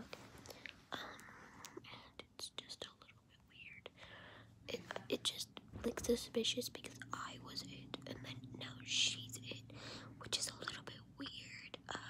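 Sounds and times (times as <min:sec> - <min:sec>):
girl whispering: 0:00.9 - 0:04.0, 0:04.7 - 0:12.0.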